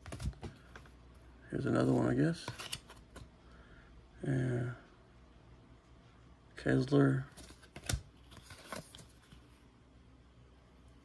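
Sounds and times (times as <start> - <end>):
trading cards shuffling: 1.8 - 3.3, 7.3 - 9.5.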